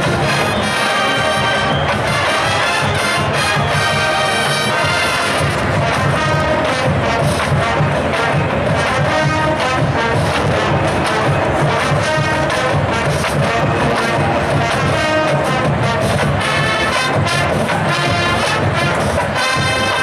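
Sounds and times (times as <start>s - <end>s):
marching band brass jazz tune: 0.0s - 20.0s
steady drum beat: 0.0s - 20.0s.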